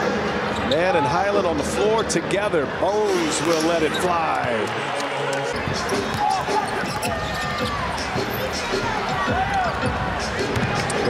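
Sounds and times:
sneakers squeaking: 0.5 - 0.8, 3.1 - 11.0
crowd murmur: 2.9 - 11.0
basketball dribbling: 5.6 - 11.0.

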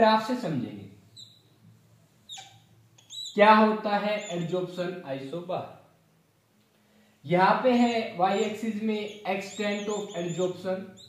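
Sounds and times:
whiteboard marker squeaking: 1.1 - 1.6, 2.3 - 4.8, 7.7 - 11.0.

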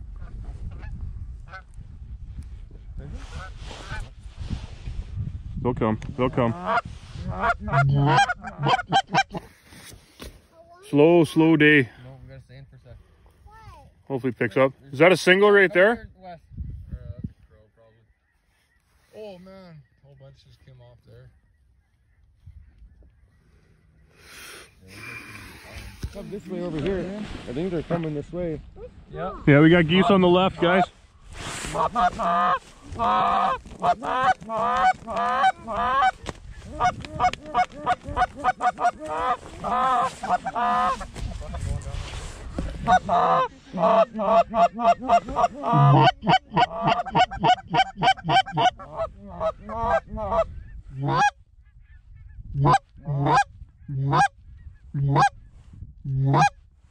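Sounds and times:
wind rumble on microphone: 0.0 - 9.4, 16.0 - 17.6, 22.2 - 23.3, 25.5 - 56.9
distant geese honking: 6.5 - 9.4, 29.7 - 41.9, 42.6 - 52.0, 52.6 - 55.4, 56.2 - 56.5.

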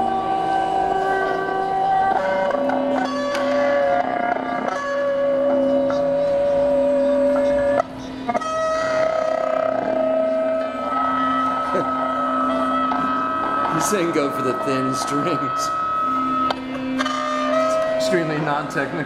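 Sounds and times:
electric guitars sustained notes: 0.0 - 19.0.

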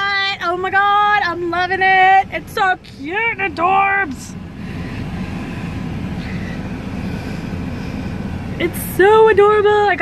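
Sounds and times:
car cabin low rumble: 0.0 - 10.0.

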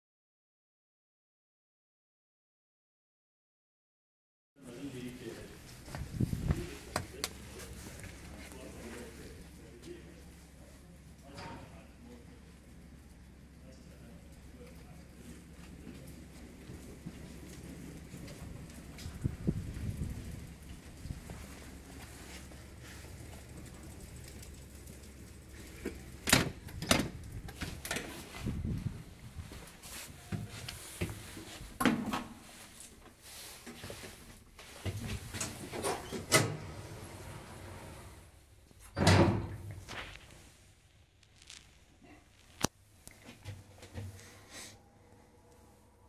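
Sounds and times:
elevator shaft hum: 35.9 - 38.3.

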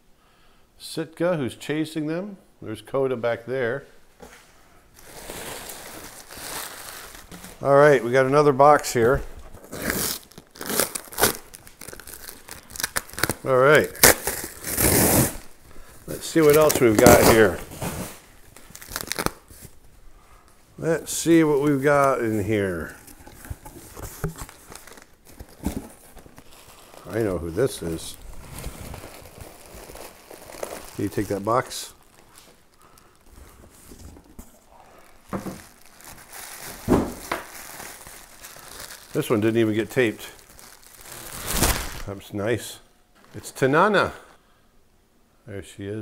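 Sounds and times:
plastic wrapping crinkling: 4.9 - 42.2
cardboard box rustling: 23.0 - 26.6.

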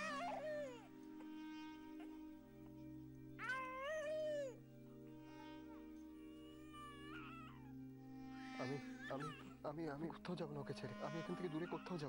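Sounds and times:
baby crying: 0.0 - 2.2, 3.4 - 4.6, 6.3 - 7.8, 8.6 - 9.6, 10.9 - 12.0
background music: 0.0 - 12.0.

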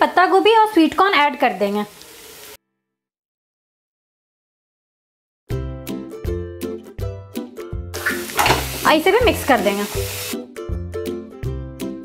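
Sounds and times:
vegetables stir-frying hiss: 0.0 - 2.6, 8.0 - 10.5.

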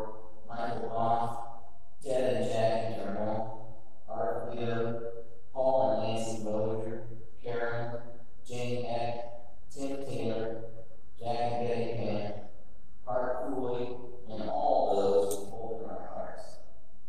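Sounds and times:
man chanting: 0.0 - 1.4, 2.0 - 3.5, 4.1 - 5.0, 5.6 - 10.6, 11.2 - 12.4, 13.1 - 16.6.

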